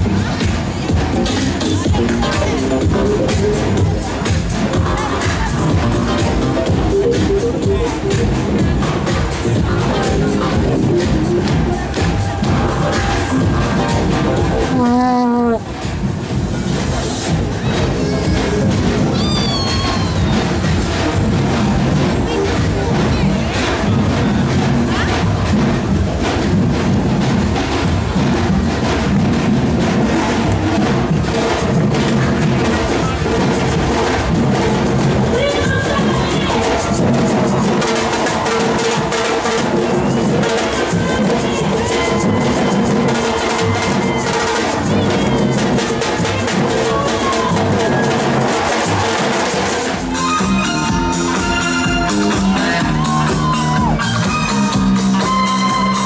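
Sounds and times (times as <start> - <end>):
large drums beaten with mallets: 0.0 - 56.0.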